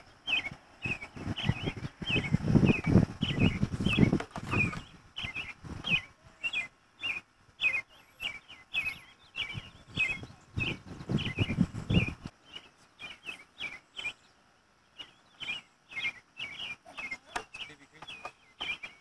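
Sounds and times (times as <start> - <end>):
small bird chirping: 0.0 - 19.0.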